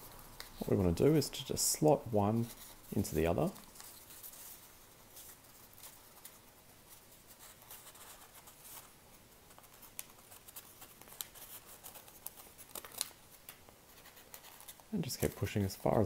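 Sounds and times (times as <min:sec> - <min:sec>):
paper rustling and crinkling: 0:00.0 - 0:16.0.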